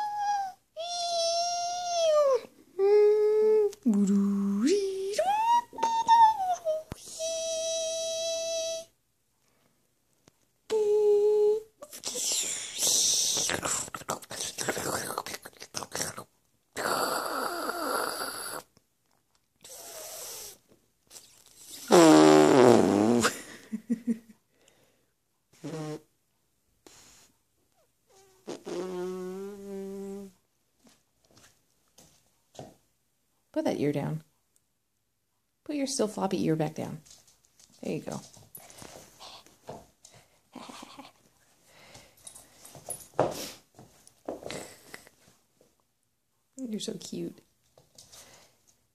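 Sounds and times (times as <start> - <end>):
person making squeaky vocal noises: 0.0 - 8.9, 10.7 - 18.7, 28.1 - 30.4
small dog breathing: 38.6 - 40.4.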